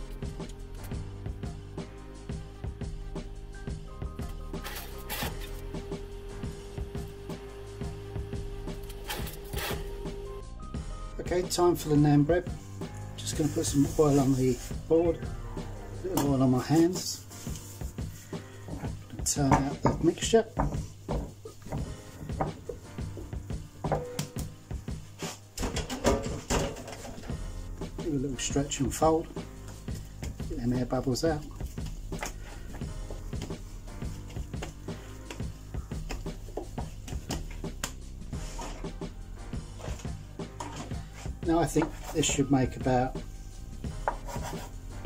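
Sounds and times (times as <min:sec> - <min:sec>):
dough scraper scraping board: 0:09.1 - 0:09.9, 0:44.0 - 0:44.8
knocks on wooden board: 0:19.5 - 0:22.6.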